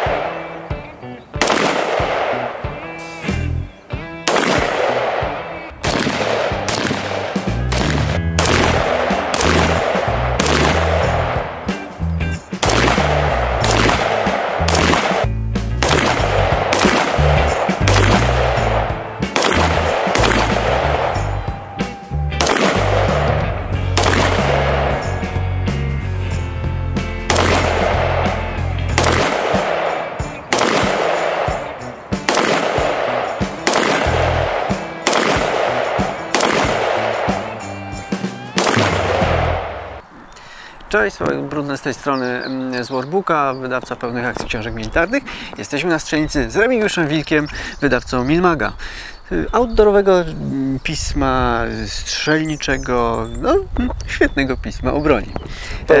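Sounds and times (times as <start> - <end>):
rifle shots: 0.0 - 0.6, 1.4 - 2.7, 4.2 - 11.8, 12.6 - 21.4, 22.4 - 25.2, 27.3 - 37.7, 38.5 - 40.0
music with heavy bass beat: 7.4 - 26.2.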